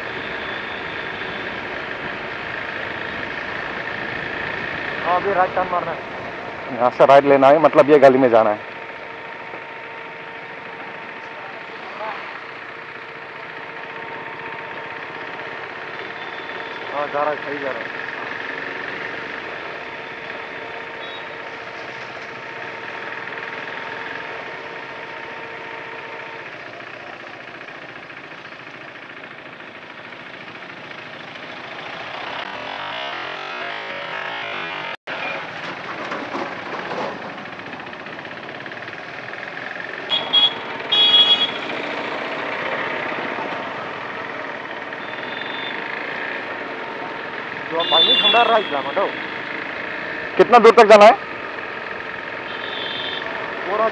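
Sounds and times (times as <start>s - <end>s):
motorcycle engine running: 0.0s - 53.9s
road and wind noise: 0.0s - 53.9s
vehicle horn beeps: 21.0s - 21.4s, 40.1s - 41.8s, 45.0s - 45.8s, 47.7s - 49.4s, 52.4s - 53.4s.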